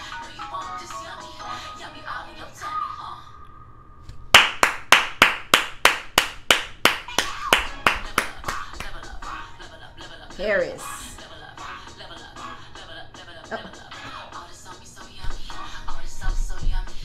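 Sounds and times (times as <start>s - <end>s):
quiet background music: 0.0s - 4.3s, 7.1s - 17.0s
hand clapping in rhythm: 4.3s - 9.2s.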